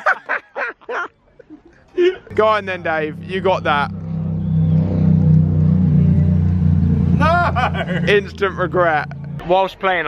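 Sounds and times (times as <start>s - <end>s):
engine droning: 2.3s - 9.6s.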